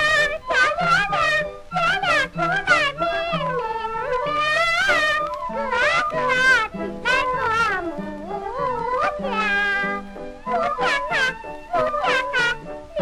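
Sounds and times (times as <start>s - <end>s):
high singing voice: 0.0s - 13.0s.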